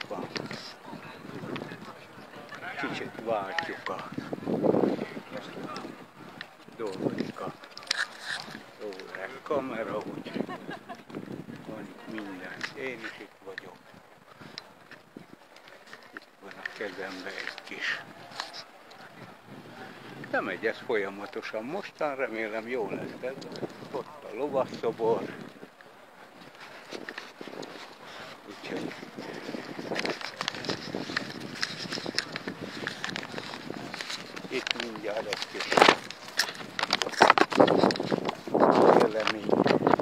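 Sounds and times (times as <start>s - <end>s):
quiet outdoor background noise: 0.0s - 40.0s
leafy branch rustling: 26.4s - 40.0s.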